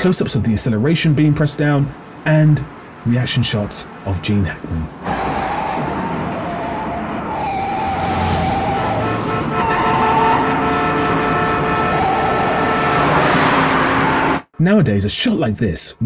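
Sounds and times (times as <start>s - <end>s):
road noise: 0.0s - 16.0s
car engine at high revs: 5.0s - 9.6s
car horn blasts: 8.8s - 14.4s.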